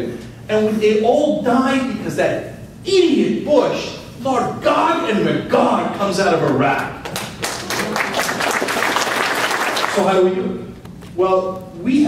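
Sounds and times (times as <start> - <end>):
audience applauding: 7.0 - 10.1.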